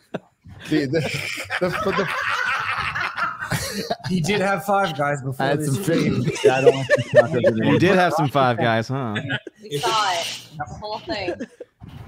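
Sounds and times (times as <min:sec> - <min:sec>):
men laughing: 0:00.0 - 0:11.8.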